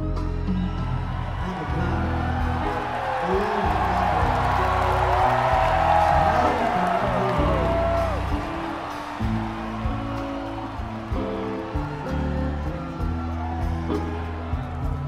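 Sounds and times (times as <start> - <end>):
crowd cheering: 0.0 - 15.0
crowd whistling: 0.0 - 15.0
live rock band playing: 0.0 - 15.0.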